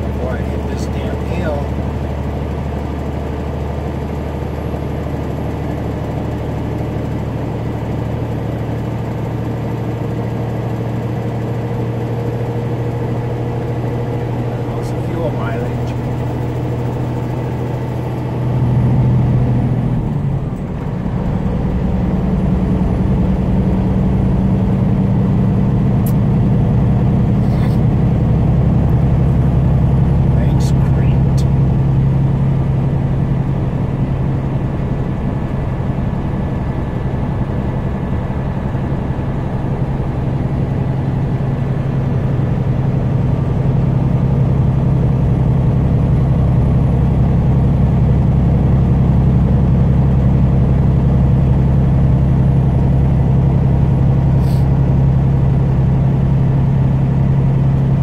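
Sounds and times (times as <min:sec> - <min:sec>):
truck engine droning: 0:00.0 - 0:58.0.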